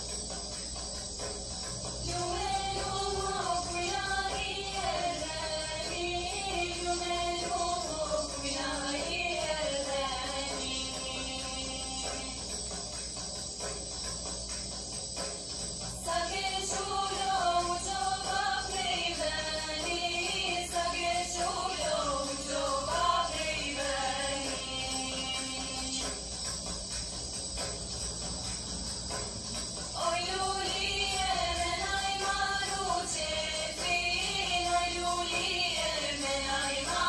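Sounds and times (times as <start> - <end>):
girls singing: 2.0 - 12.5, 16.0 - 26.2, 30.0 - 37.0.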